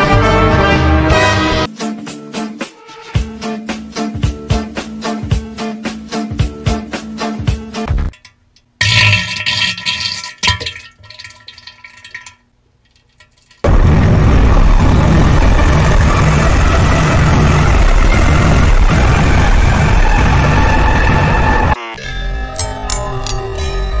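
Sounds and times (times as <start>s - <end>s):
loud harsh distorted noise: 13.7s - 21.8s.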